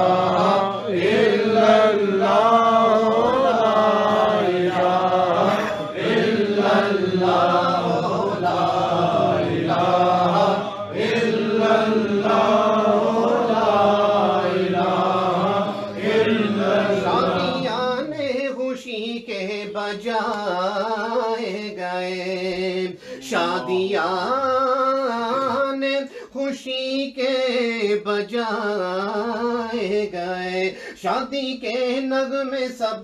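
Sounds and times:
men chanting together: 0.0s - 18.5s, 19.7s - 25.8s.

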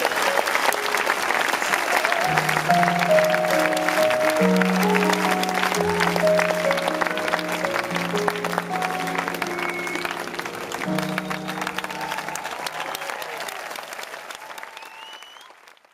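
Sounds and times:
crowd applause and cheering: 0.0s - 15.9s
live band closing chords: 2.3s - 12.6s.

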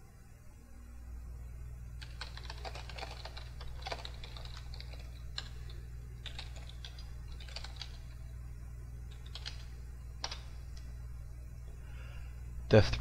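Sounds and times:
steady low hum: 0.0s - 13.0s
keyboard typing clicks: 2.0s - 5.6s, 6.2s - 8.2s, 9.1s - 10.9s.

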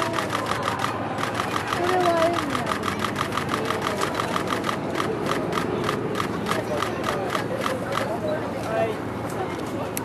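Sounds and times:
rapid mechanical ticking: 0.0s - 8.0s.

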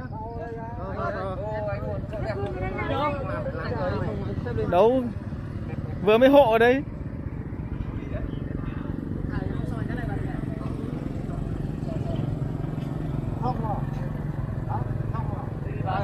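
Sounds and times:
motorbike engine idling: 0.0s - 16.0s.

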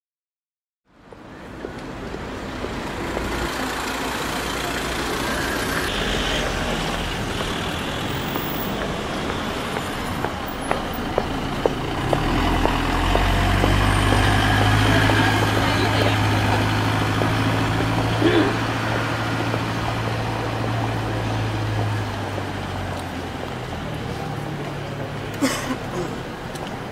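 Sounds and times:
vehicle road and engine noise: 0.9s - 26.9s.

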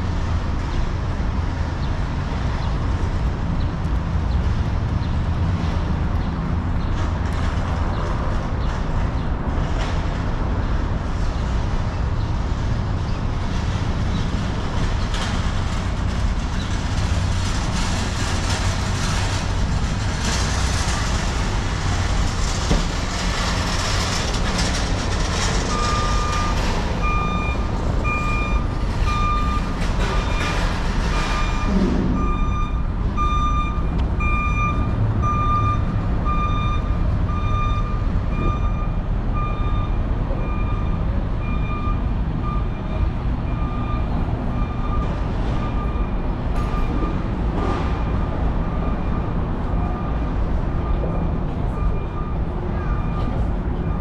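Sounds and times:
traffic rumble: 0.0s - 54.0s
vehicle backup alarm beeping: 25.4s - 54.0s.

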